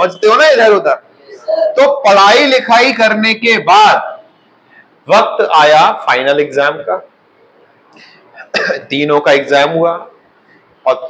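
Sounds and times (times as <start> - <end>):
man talking: 0.0 - 4.3, 5.0 - 7.1, 8.5 - 10.2
man coughing: 8.3 - 8.9.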